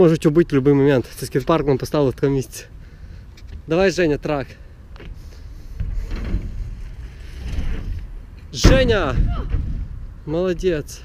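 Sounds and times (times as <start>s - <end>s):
faint outdoor hiss: 0.0s - 11.0s
wind rumbling on microphone: 4.9s - 10.9s.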